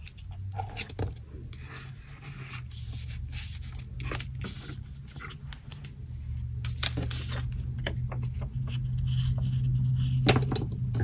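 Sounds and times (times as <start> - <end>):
low steady hum: 0.0 - 11.0
paper rustling: 6.7 - 9.8
stick rubbing paper: 8.7 - 10.3.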